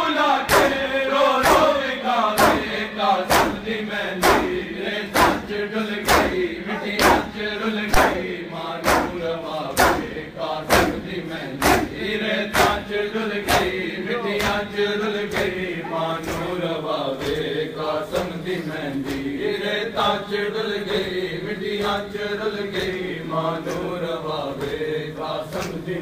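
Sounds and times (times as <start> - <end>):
men chanting a lament: 0.0 - 26.0
chest-beating slaps: 0.5 - 1.7, 2.4 - 13.8, 16.2 - 16.6, 17.2 - 18.4, 25.5 - 25.8.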